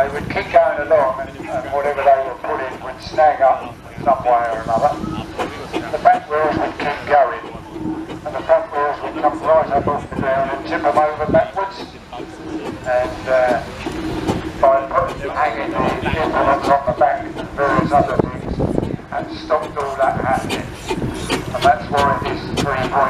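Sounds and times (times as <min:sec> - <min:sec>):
steam traction engine running: 0:00.0 - 0:23.0
voices talking: 0:00.0 - 0:23.0.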